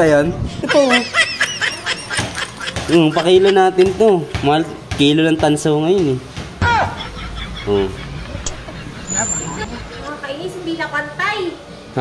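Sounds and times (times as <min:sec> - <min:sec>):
low background rumble: 0:06.5 - 0:11.0
thin high tone: 0:07.0 - 0:10.5.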